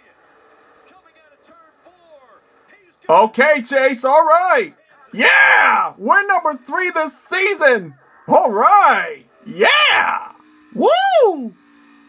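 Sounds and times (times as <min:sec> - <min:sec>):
race car noise: 0:00.0 - 0:12.0
commentator talking: 0:03.1 - 0:11.5.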